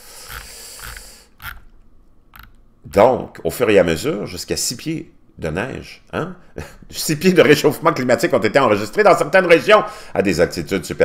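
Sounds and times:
person exhaling: 0.0 - 1.4.

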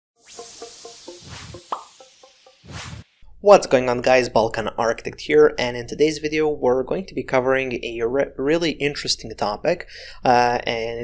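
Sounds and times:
rising pop: 0.2 - 3.2.

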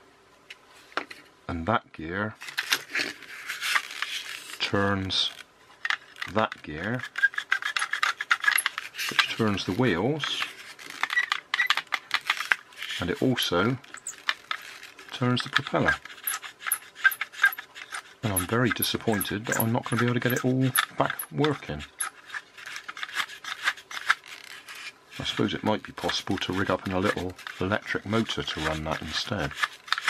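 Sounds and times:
plastic toy parts clicking: 5.3 - 30.0.

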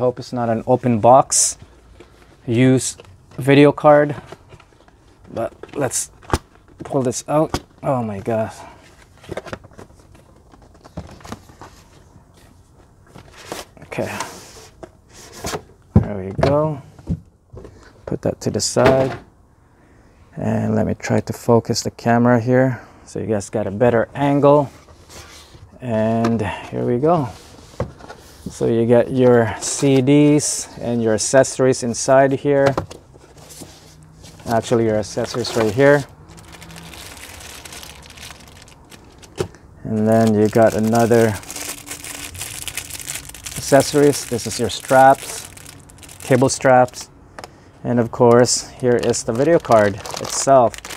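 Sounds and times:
cardboard box rustling: 33.2 - 46.3.

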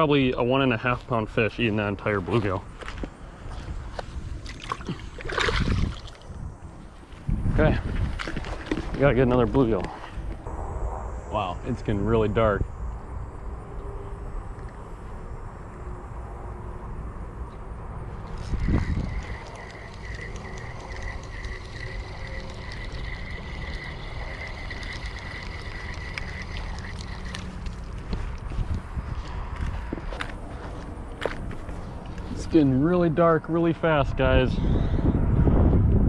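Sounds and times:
wind rumble on microphone: 0.0 - 36.0
fishing reel whirring and clicking: 18.2 - 28.0.

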